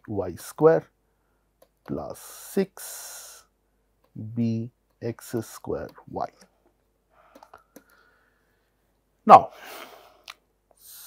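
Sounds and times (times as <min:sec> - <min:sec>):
stylus tapping on tablet: 0:01.5 - 0:02.0, 0:04.8 - 0:06.5, 0:07.2 - 0:08.0.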